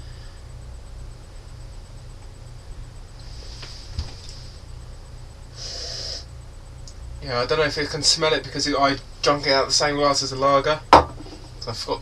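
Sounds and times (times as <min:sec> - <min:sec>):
steady low hum: 0:00.0 - 0:12.0
person sniffing: 0:05.6 - 0:06.3.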